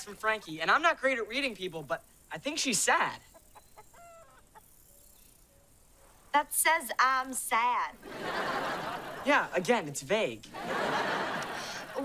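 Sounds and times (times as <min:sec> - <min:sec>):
hen clucking: 0:03.2 - 0:04.8.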